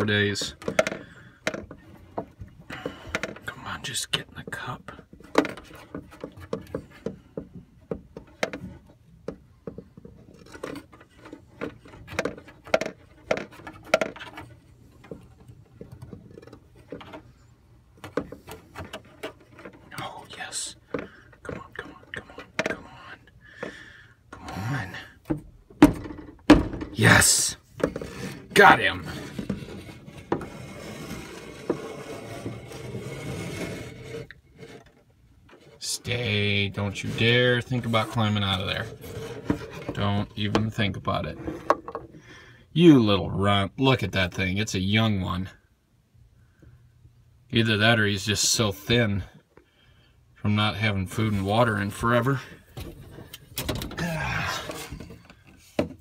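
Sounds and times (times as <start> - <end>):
plastic cup scraping against wood: 0.0 - 9.0, 9.6 - 25.1, 27.7 - 42.2.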